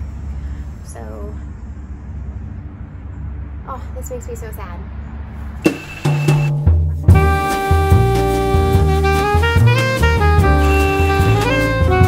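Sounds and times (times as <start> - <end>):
drum kit hits: 5.6 - 12.0
held bass notes: 5.7 - 12.0
jazzy tune: 5.7 - 12.0.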